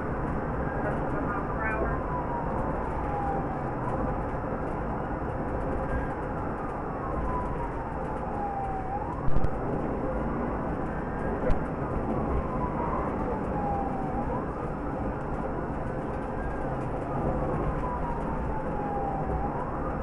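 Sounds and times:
police siren wailing: 0:00.0 - 0:20.0
road and engine noise: 0:00.0 - 0:20.0.

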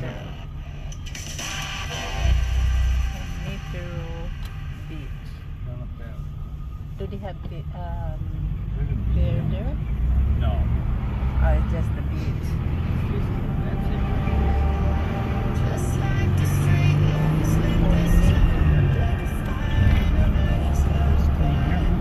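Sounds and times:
car engine rumble: 0:00.0 - 0:22.0
road noise: 0:00.0 - 0:22.0.

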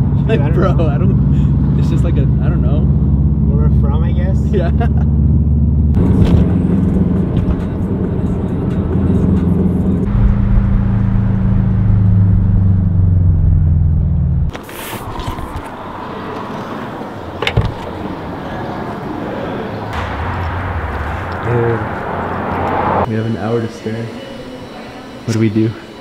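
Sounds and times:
car engine droning in cabin: 0:00.0 - 0:14.6, 0:15.2 - 0:23.1
outdoor hum: 0:05.0 - 0:23.5
rush of noise: 0:15.0 - 0:23.4.

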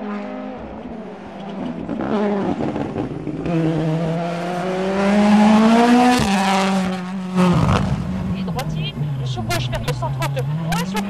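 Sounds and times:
rally car engine accelerating: 0:00.0 - 0:11.0.

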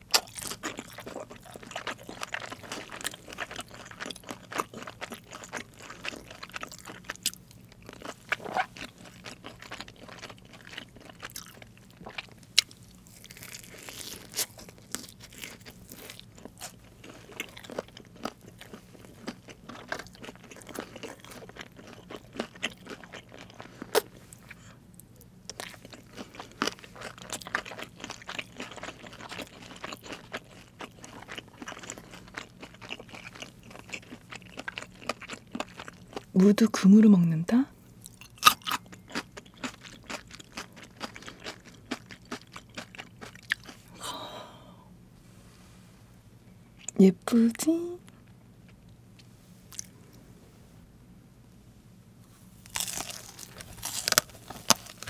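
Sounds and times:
crunchy chewing of fried chicken: 0:00.0 - 0:36.4, 0:37.9 - 0:44.6, 0:48.1 - 0:50.4, 0:52.3 - 0:55.0.

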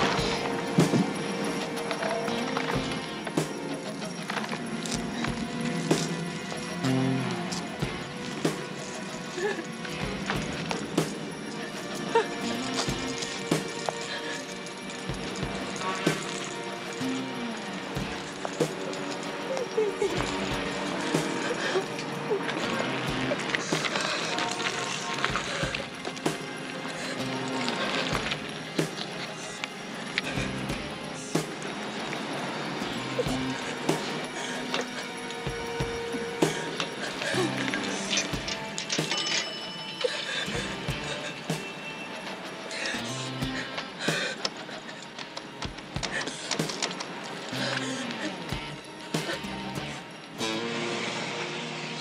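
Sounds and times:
drama score music: 0:00.0 - 0:52.0.

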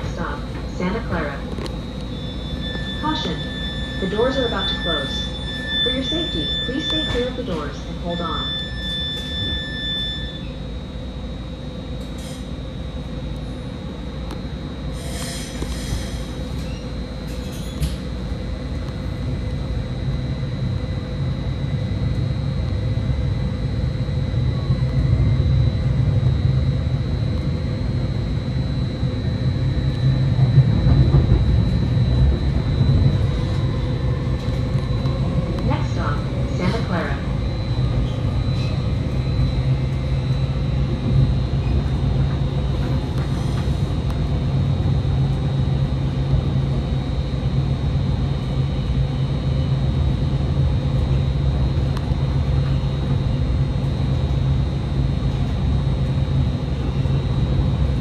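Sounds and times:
train wheels rumbling on track: 0:11.4 - 0:58.0.

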